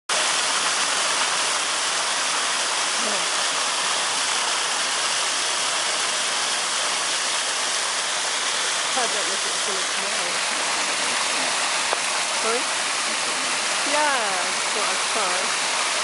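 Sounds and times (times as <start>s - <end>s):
floodwater rushing: 0.1s - 16.0s.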